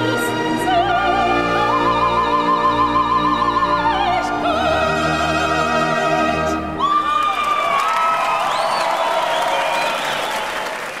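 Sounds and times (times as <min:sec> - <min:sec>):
audience applauding: 0:07.0 - 0:11.0.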